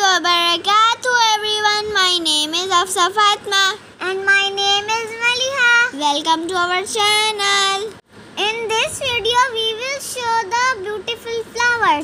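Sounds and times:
child singing: 0:00.0 - 0:12.0.

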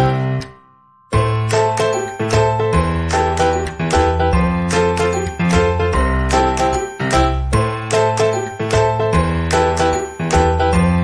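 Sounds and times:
chiming melody: 0:00.0 - 0:11.0.

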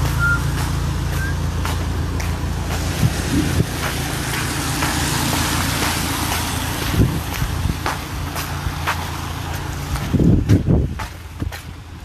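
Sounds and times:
tyre and road noise: 0:00.0 - 0:12.0
vehicle engine humming: 0:00.0 - 0:12.0.

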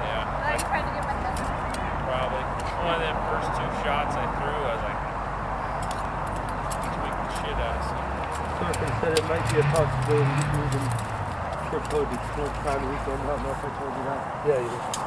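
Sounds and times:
indistinct voices: 0:06.8 - 0:14.9.

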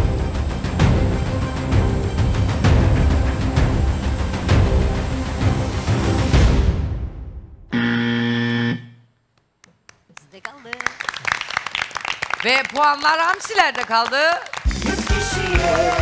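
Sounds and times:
game show suspense music: 0:00.0 - 0:08.9
loud wrong-answer buzzer: 0:07.7 - 0:09.1.

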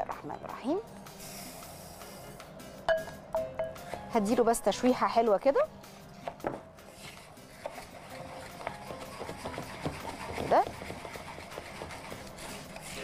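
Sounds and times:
wooden spoon stirring rice in pot: 0:06.9 - 0:13.0.

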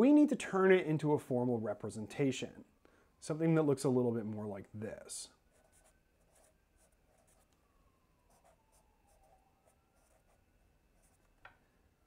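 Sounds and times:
marker scratching on paper: 0:11.0 - 0:11.4.

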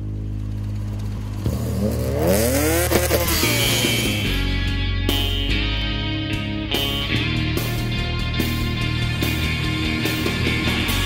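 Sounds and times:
low musical drone: 0:00.0 - 0:11.0
racing car accelerating past: 0:00.4 - 0:04.4.

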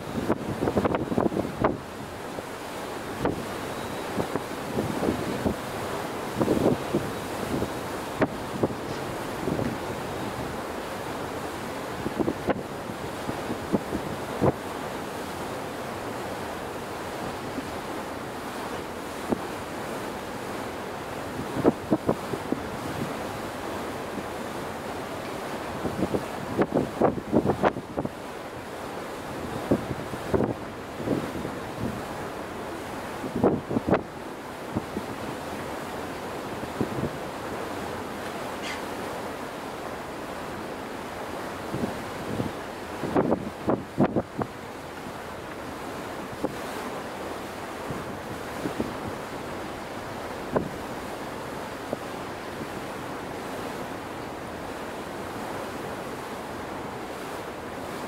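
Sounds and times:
wind buffeting microphone: 0:00.0 - 0:02.0, 0:03.2 - 0:10.7, 0:29.4 - 0:32.2, 0:33.1 - 0:34.0, 0:41.6 - 0:46.9
rush of sea water: 0:00.0 - 0:58.0.

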